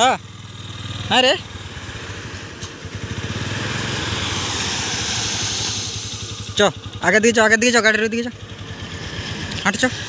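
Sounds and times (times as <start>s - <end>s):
motorcycle engine running: 0.0s - 10.0s
hiss: 2.0s - 7.0s.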